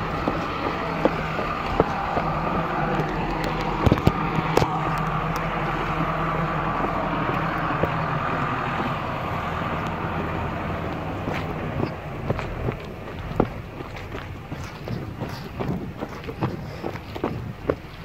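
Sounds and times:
tracked machine engine running: 0.0 - 18.0.

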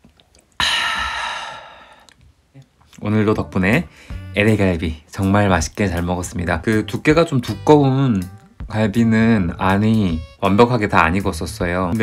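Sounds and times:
man sighing: 0.6 - 2.2.

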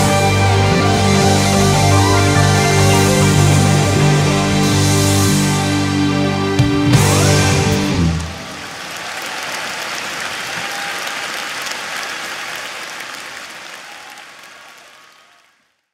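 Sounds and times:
band final chord: 0.0 - 8.4
audience applause: 7.0 - 15.9.

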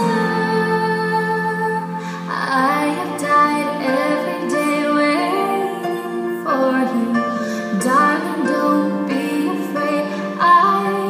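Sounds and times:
song with singing: 0.0 - 11.0.

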